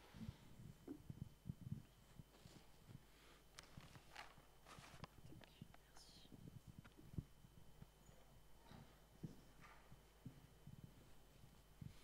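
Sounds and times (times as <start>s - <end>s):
faint whispering: 5.2s - 6.8s.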